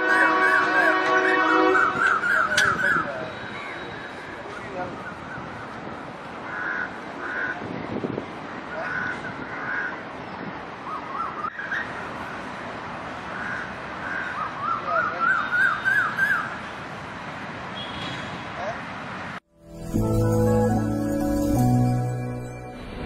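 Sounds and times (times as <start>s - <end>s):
crows cawing: 6.4s - 7.6s, 8.8s - 10.0s, 13.3s - 14.4s.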